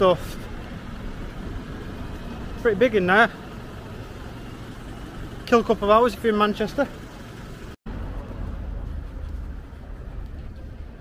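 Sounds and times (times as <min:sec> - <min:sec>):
steady low rumble: 0:00.0 - 0:05.9, 0:06.5 - 0:11.0.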